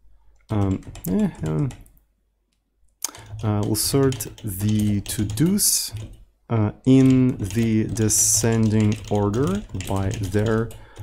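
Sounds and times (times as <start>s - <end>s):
man muttering: 0.5s - 1.8s, 6.5s - 8.0s.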